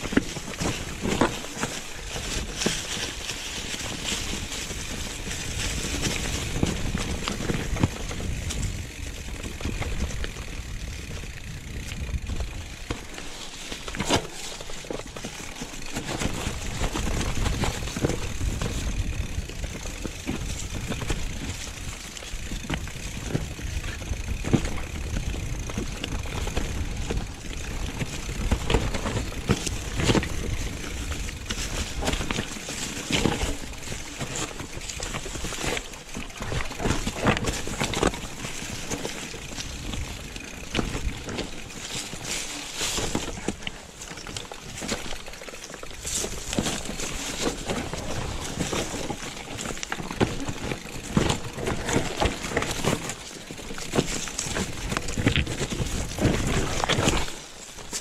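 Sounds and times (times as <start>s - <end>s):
bike knocking and rattling: 0.0s - 58.0s
bike tyres on rough trail: 0.0s - 58.0s.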